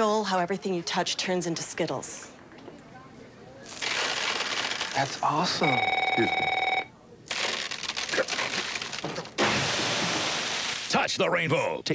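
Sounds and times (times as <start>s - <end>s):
bell-like ringing tone: 5.6s - 6.9s.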